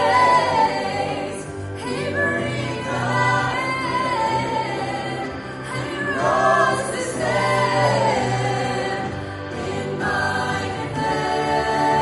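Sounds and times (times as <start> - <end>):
choir singing in harmony: 0.0 - 12.0.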